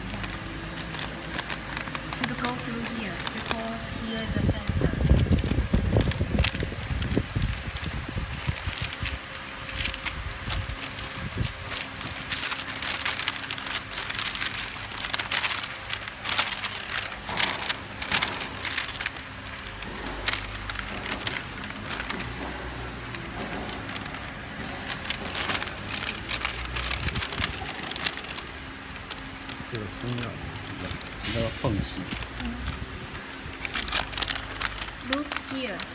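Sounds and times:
paper crinkling and rustling: 0:00.0 - 0:35.9.

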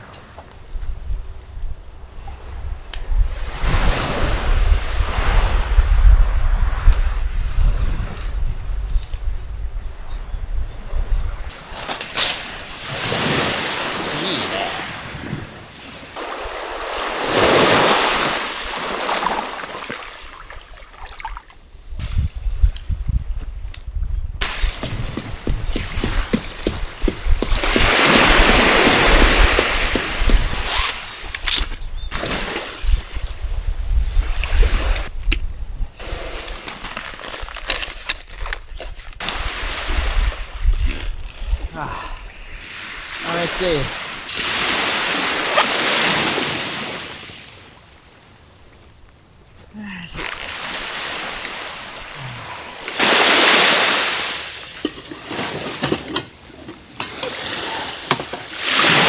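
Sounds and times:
wind rumbling on microphone: 0:00.0 - 0:19.0, 0:20.4 - 0:55.7
small waves washing onto sand: 0:11.5 - 0:21.6, 0:24.4 - 0:33.2, 0:39.2 - 0:41.2, 0:42.3 - 0:48.3, 0:49.7 - 0:55.9, 0:57.1 - 0:59.0.

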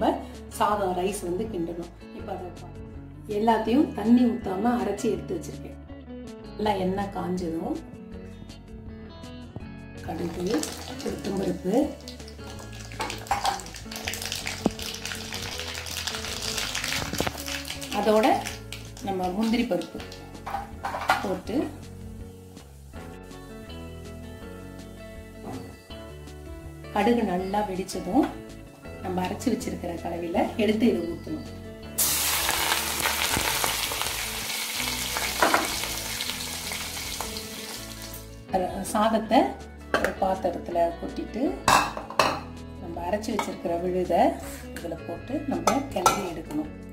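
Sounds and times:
hot oil sizzling and bubbling: 0:10.1 - 0:26.8, 0:32.0 - 0:38.4.

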